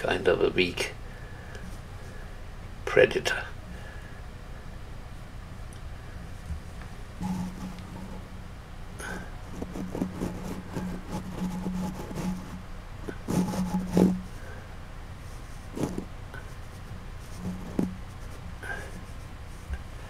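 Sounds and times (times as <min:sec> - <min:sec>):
low hum: 0:00.0 - 0:20.0
wire tool scraping and tapping: 0:06.8 - 0:08.2, 0:09.1 - 0:14.3, 0:15.8 - 0:16.5, 0:17.4 - 0:18.8.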